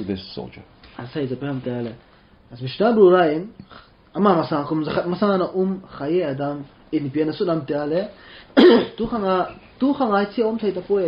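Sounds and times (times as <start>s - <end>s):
man speaking: 4.2s - 11.0s
man clearing his throat: 8.6s - 9.0s.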